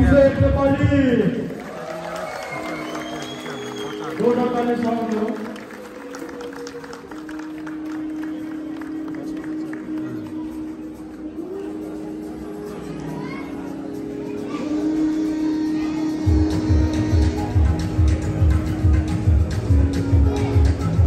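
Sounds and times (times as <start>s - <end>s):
music with long held notes: 2.4s - 21.0s.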